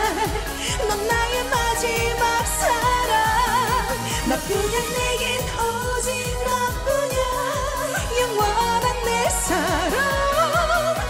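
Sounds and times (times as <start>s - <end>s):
woman singing: 0.0s - 11.0s.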